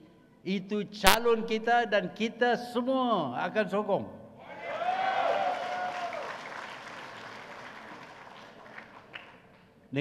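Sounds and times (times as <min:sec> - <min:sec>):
audience applauding: 0:05.2 - 0:09.4.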